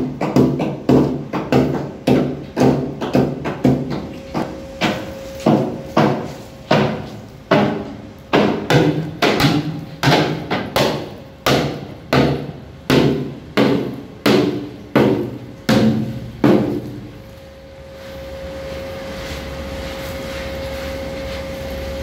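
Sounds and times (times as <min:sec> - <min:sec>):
hammer striking steel plate: 0:00.0 - 0:17.1
machine hum with faint whine: 0:00.0 - 0:22.0.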